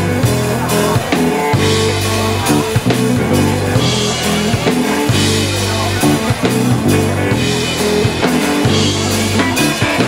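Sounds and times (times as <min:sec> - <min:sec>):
drum kit strokes: 0:00.0 - 0:10.0
electric bass low notes: 0:00.0 - 0:10.0
electric guitar: 0:00.0 - 0:10.0.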